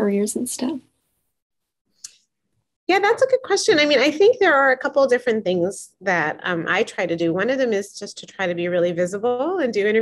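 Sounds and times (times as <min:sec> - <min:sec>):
woman's voice: 0:02.9 - 0:10.0.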